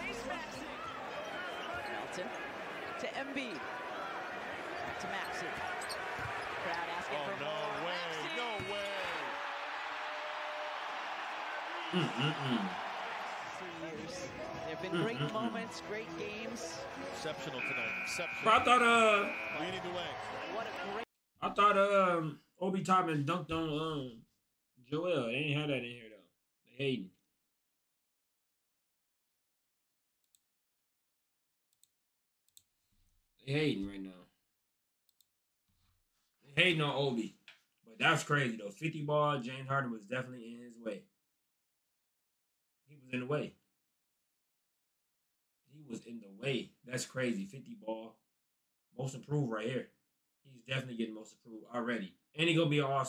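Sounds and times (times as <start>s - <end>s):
arena noise: 0.0s - 21.0s.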